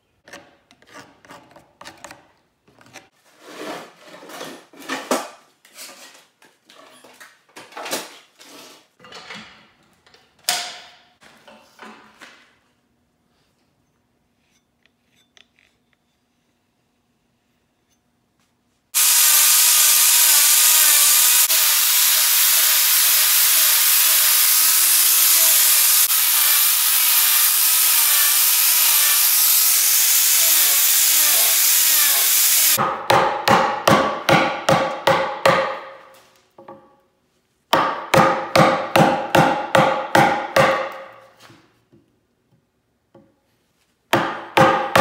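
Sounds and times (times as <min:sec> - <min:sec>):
angle grinder cutting wood: 0:19.0 - 0:32.8
hammer striking chisel: 0:32.8 - 0:35.9, 0:37.8 - 0:41.2, 0:44.1 - 0:45.0.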